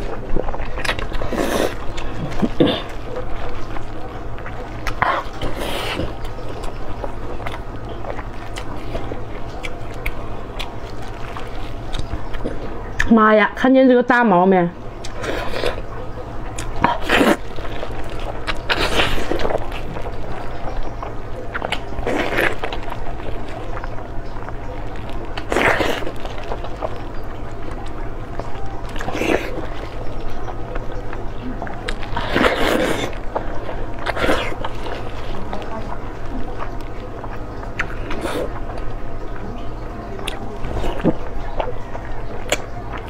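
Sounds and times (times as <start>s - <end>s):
wet chewing and sucking: 0.0s - 13.1s, 15.0s - 43.0s.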